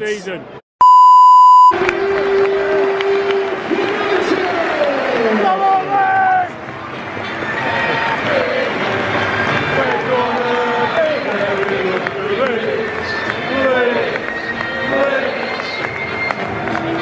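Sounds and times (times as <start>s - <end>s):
stadium crowd singing and cheering: 1.3s - 17.0s.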